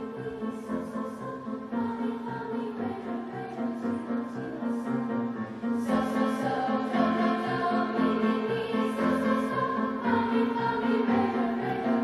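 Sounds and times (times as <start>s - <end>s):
choir singing in parts: 0.0s - 12.0s
grand piano accompaniment: 0.0s - 12.0s.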